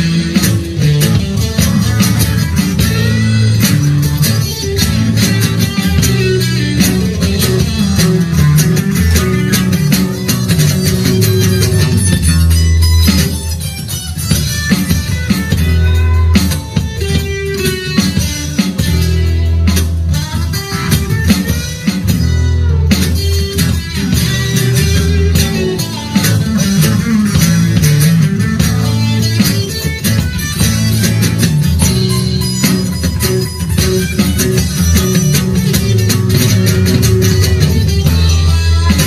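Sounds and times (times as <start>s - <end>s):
acoustic guitar: 0.0s - 39.0s
bass line: 0.0s - 39.0s
electronic drum kit beat: 0.0s - 39.0s
second guitar: 0.0s - 39.0s.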